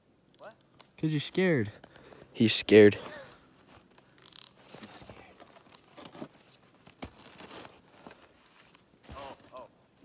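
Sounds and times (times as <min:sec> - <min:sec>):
crunching and scraping on snow: 0:04.6 - 0:09.7.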